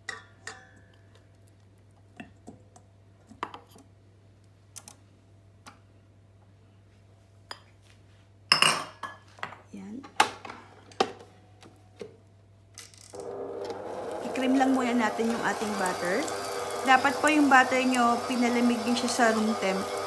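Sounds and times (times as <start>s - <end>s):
stand mixer running: 13.2s - 20.0s.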